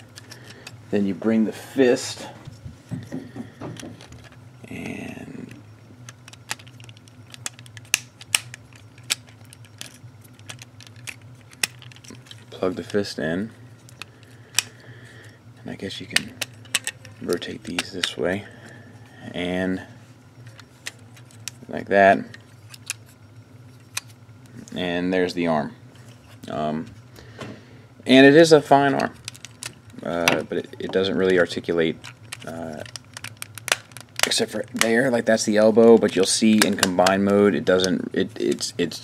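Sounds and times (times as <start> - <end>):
plastic toy parts clicking: 16.2 - 18.1, 32.0 - 34.9.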